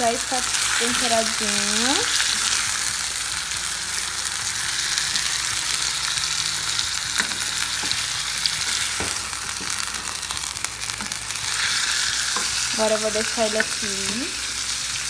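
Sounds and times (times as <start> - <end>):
chicken sizzling in a saucepan: 0.0 - 15.0.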